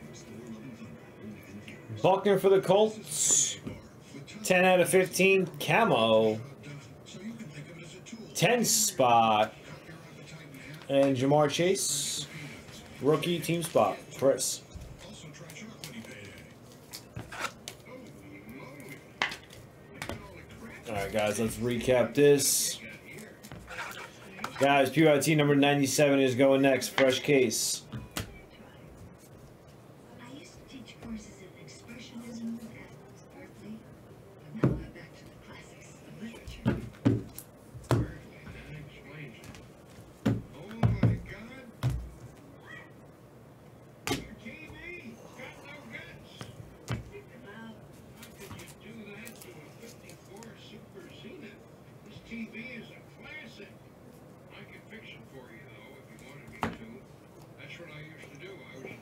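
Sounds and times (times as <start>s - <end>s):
trading cards knocking on table: 40.2s - 42.2s.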